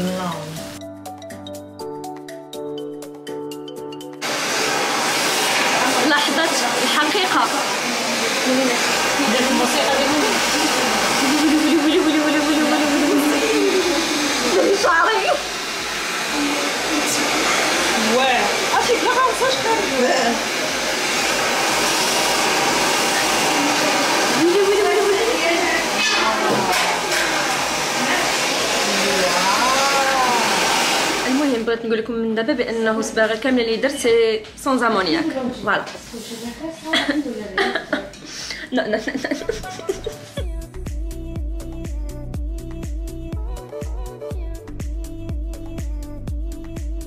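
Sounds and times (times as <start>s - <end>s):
background music: 0.0s - 5.1s, 31.2s - 47.0s
hair dryer blowing: 4.2s - 31.7s, 37.6s - 40.4s.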